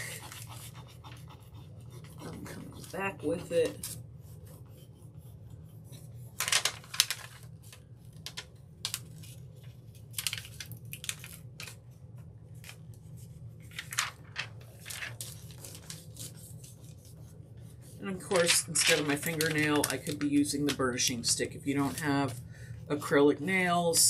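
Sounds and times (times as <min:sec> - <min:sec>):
plastic sheet crinkling: 0:06.3 - 0:11.8, 0:13.6 - 0:17.0, 0:18.1 - 0:22.4.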